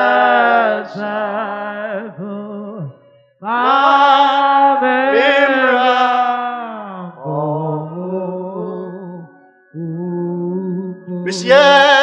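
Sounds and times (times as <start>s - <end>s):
person singing long note: 3.4s - 12.0s.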